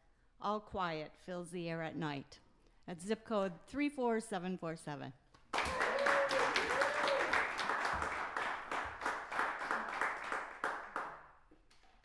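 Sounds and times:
audience applauding: 5.5s - 11.3s.

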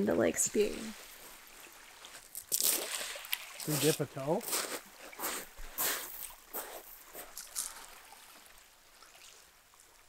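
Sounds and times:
waves lapping on pebbly shore: 0.5s - 9.5s
person speaking: 3.7s - 4.5s.

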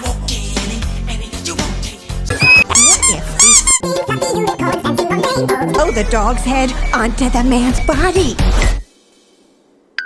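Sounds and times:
background music: 0.0s - 8.8s
high-pitched squeaks: 2.3s - 3.8s.

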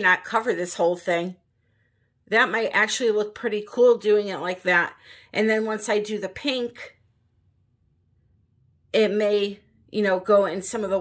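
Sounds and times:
woman speaking: 0.0s - 1.4s, 2.3s - 7.0s, 8.9s - 11.0s.

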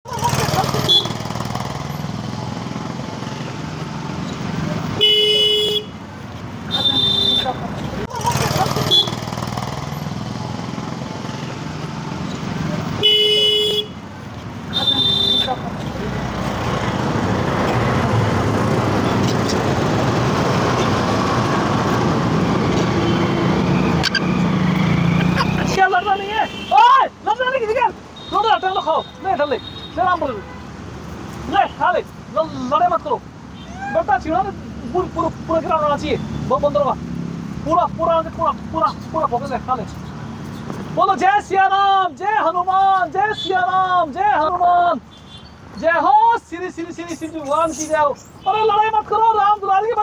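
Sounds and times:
vehicle horn toots: 0.8s - 1.2s, 5.0s - 6.0s, 6.7s - 7.6s, 13.0s - 14.0s, 14.7s - 15.6s.

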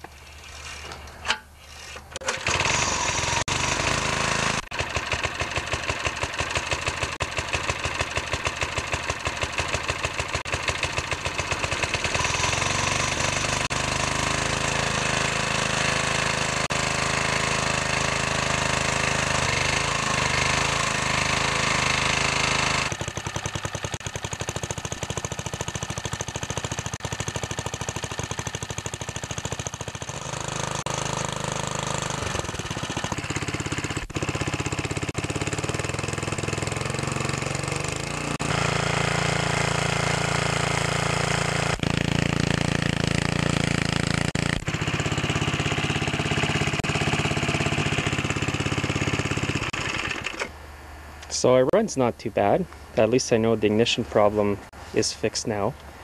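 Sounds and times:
small engine running: 1.7s - 50.6s.

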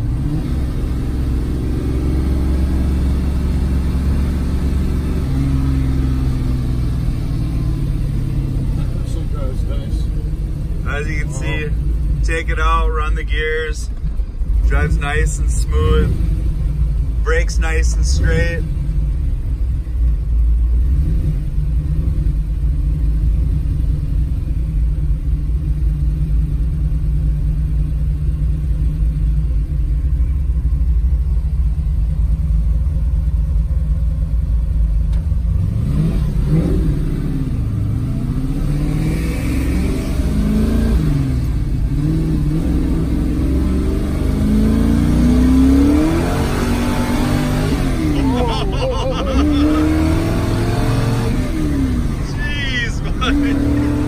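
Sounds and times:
car engine from inside cabin: 0.0s - 54.0s.

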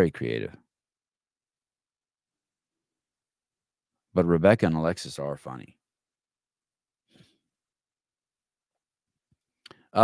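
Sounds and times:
man speaking: 0.0s - 0.6s, 4.2s - 5.7s
brief breath: 7.1s - 7.4s.

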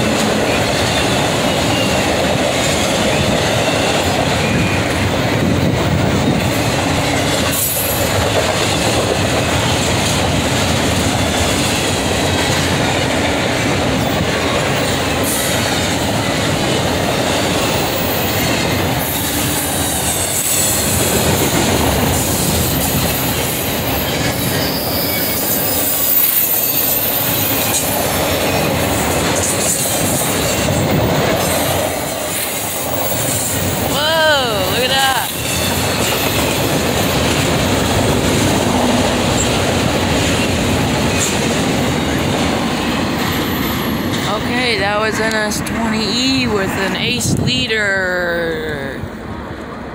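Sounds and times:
freight train wheels rumbling: 0.0s - 49.9s
high wheel squeal: 22.4s - 28.8s, 35.2s - 37.2s.

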